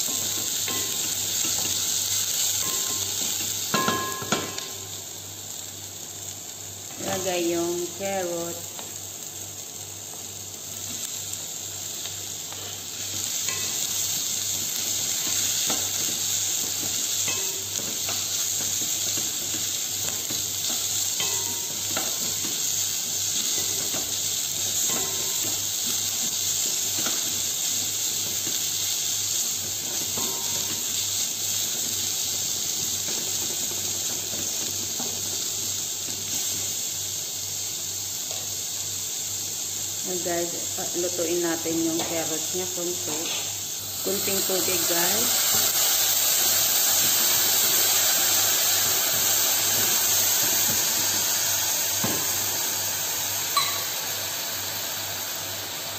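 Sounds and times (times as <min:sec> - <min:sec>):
vegetables sizzling in oil: 0:00.0 - 0:55.9
wooden spatula tapping pot: 0:02.6 - 0:04.7, 0:53.6 - 0:53.9.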